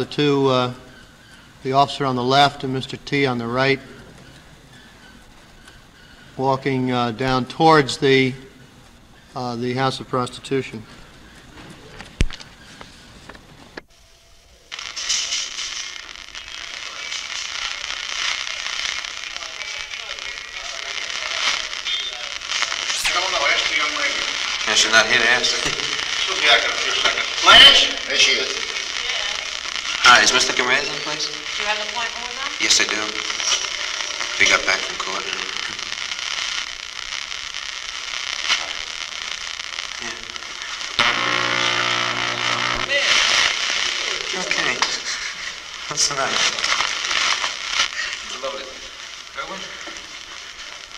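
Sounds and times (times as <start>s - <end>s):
muffled voices: 0.0s - 13.4s, 14.6s - 37.0s, 38.0s - 50.9s
hiss with crackle: 0.0s - 50.9s.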